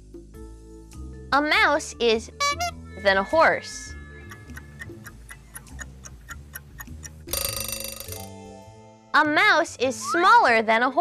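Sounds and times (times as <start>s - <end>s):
light background music: 0.0s - 11.0s
clock ticking: 4.1s - 8.3s
bell ringing: 7.3s - 8.4s.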